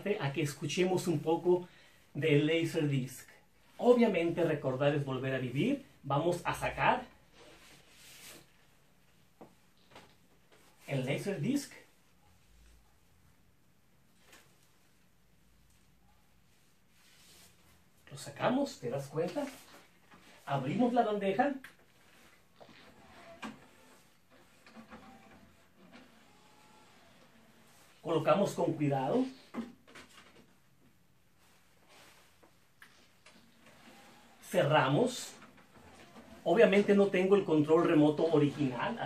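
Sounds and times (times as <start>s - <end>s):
motorized disc tray sliding: 22.8s - 27.7s, 33.4s - 39.0s.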